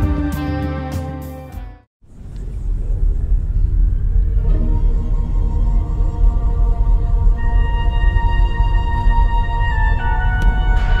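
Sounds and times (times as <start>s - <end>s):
deep ominous music drone: 2.3s - 11.0s.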